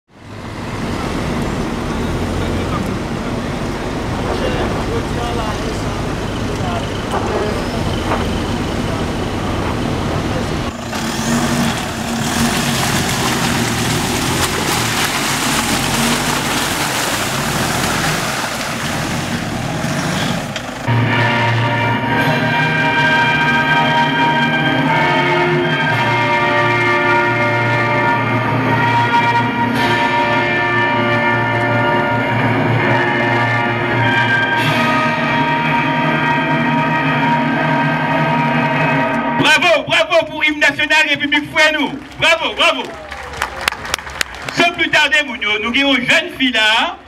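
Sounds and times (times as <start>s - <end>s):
truck engine rumble: 0.1s - 47.0s
tyres on dirt track: 0.1s - 47.0s
background voices: 0.8s - 10.9s
music: 20.9s - 39.4s.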